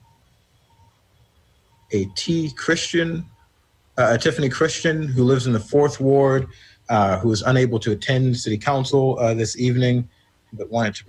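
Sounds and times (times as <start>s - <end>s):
man's voice: 1.9s - 3.4s, 4.0s - 11.0s.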